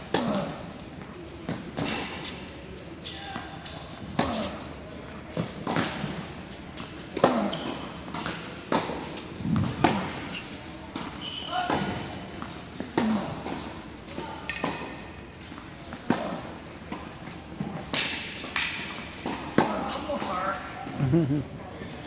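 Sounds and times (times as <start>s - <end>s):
tennis racquets striking balls: 0.0s - 0.8s, 1.5s - 20.6s
tennis balls bouncing on hard court: 3.3s - 20.6s.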